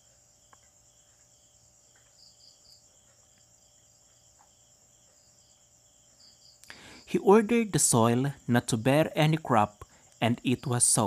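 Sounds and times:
soft ticks: 0.0s - 1.3s, 1.9s - 2.2s
insects chirping: 0.0s - 11.0s.

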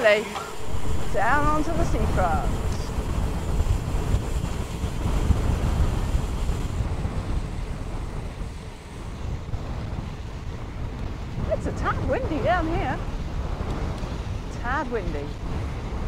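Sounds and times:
wind buffeting microphone: 0.0s - 16.0s
person speaking: 1.1s - 2.8s.

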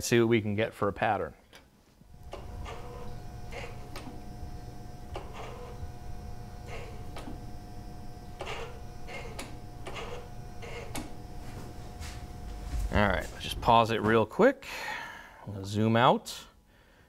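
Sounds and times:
faint steady hum: 0.0s - 17.0s
throttle motor whirring: 2.1s - 12.4s.

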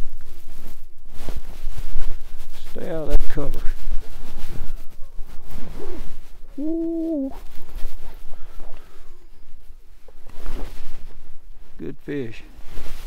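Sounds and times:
short vocal sounds: 5.8s - 7.5s.

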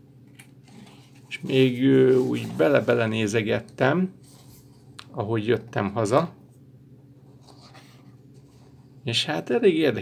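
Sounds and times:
low steady hum: 0.0s - 10.0s
pages rustling: 0.6s - 3.1s.

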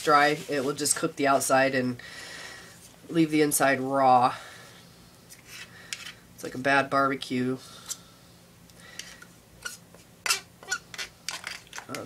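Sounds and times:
palette knife scraping plastic cup: 9.6s - 12.0s.

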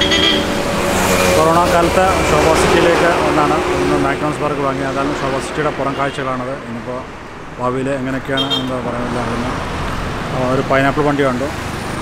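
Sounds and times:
road traffic passing: 0.0s - 12.0s
people talking: 1.4s - 9.6s, 10.3s - 11.6s.

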